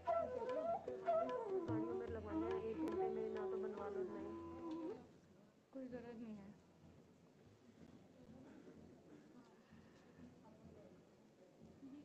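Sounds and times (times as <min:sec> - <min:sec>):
flute melody with pitch bends: 0:00.0 - 0:05.0.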